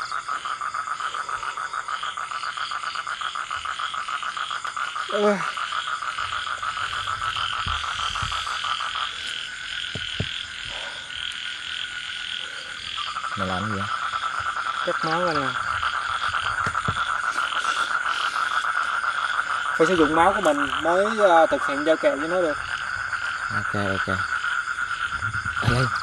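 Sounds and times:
frogs calling in pulsing chorus: 0.0 - 26.0.

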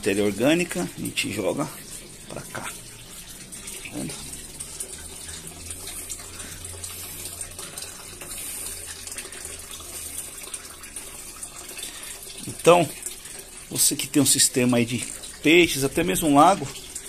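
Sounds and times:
low steady hum: 0.0 - 13.7
water splashing into fish tank: 0.0 - 17.0.

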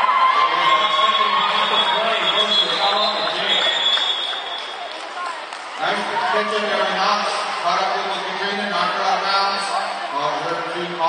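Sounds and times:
crowd chatter in sports hall: 0.0 - 11.0
man's voice: 0.4 - 3.7, 5.8 - 11.0.

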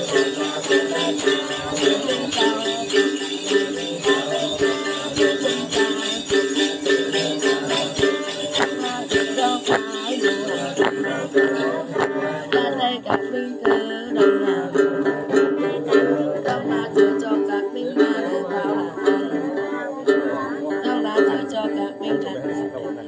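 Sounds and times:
jingle bells shaken: 0.0 - 14.7
plucked long-necked lute: 0.0 - 23.0.

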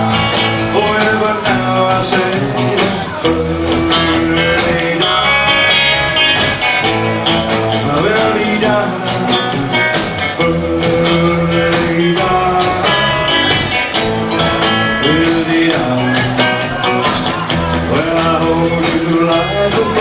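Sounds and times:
guitar lines: 0.0 - 20.0
rockabilly band playing: 0.0 - 20.0
steady drum beat: 0.0 - 20.0.

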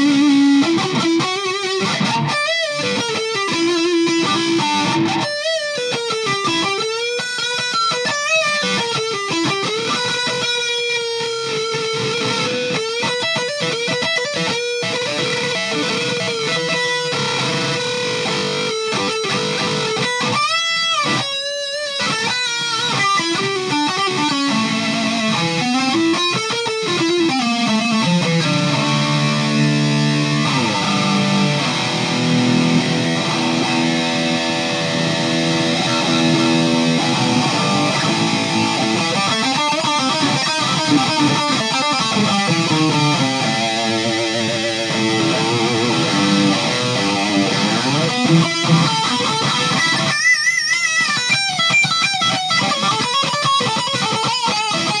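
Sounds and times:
distorted electric guitar lead: 0.0 - 55.0.

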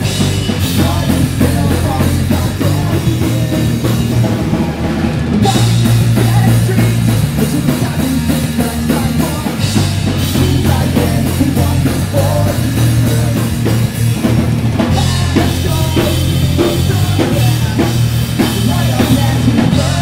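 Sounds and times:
pop-punk band playing live: 0.0 - 20.0.

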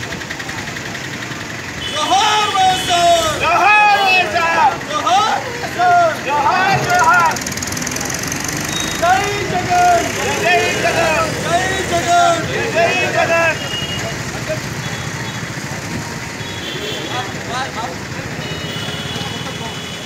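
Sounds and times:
street traffic noise: 0.0 - 20.0
high-pitched voices shouting: 2.1 - 7.5, 9.0 - 13.6.

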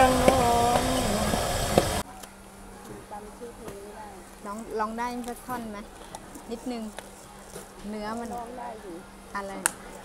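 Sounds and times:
low buzzing hum: 0.0 - 10.0.

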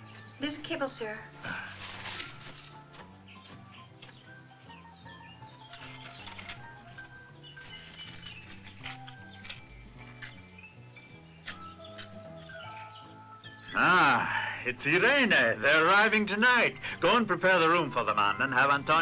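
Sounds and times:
quiet film score music: 0.0 - 19.0.

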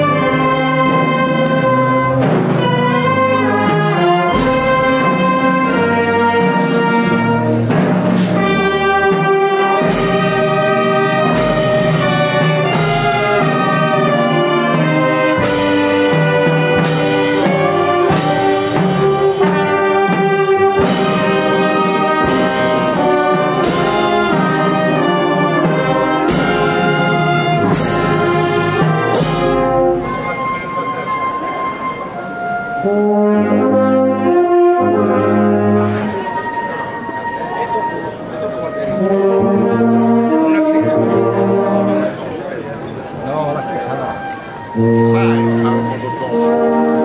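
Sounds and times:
marching band playing slow march: 0.0 - 47.0.

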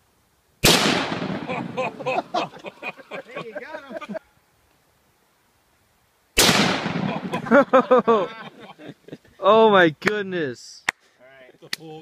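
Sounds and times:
rifle shot echo: 0.6 - 2.1, 6.4 - 7.6
man laughing: 1.4 - 4.3, 7.0 - 9.4.

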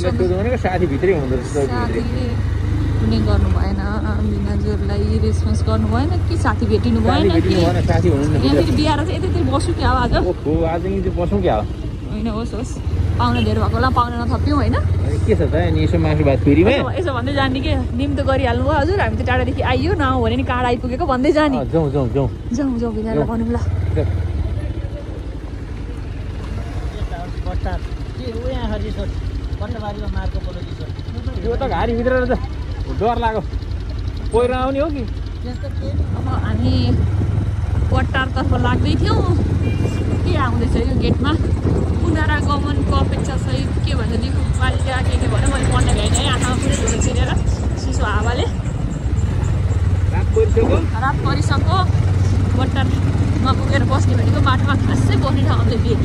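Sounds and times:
man talking: 0.0 - 2.1, 7.1 - 8.8, 10.2 - 11.7, 15.0 - 16.9, 21.6 - 22.4, 23.2 - 24.2, 29.7 - 33.4, 50.1 - 50.9
motorcycle engine running: 0.0 - 56.0
person speaking: 6.6 - 10.4.

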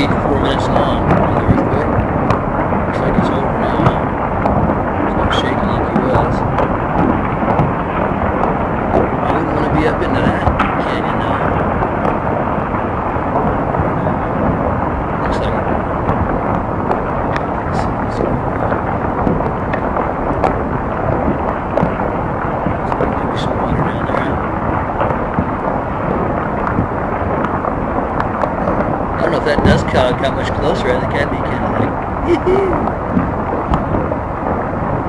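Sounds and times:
landslide rumbling: 0.0 - 35.0.

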